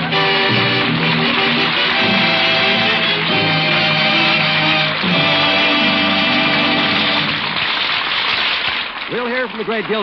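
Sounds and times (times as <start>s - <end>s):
orchestral music bridge: 0.0s - 7.5s
audience applauding: 0.0s - 10.0s.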